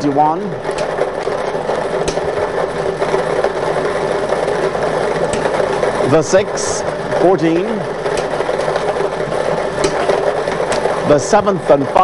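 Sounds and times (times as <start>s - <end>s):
machine whirring: 0.0s - 12.0s
sharp click: 2.0s - 2.3s.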